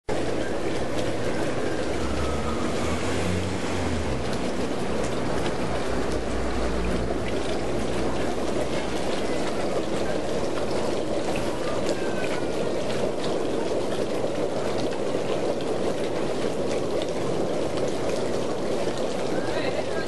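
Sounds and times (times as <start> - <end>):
aerated water splashing and bubbling: 0.1 - 20.0.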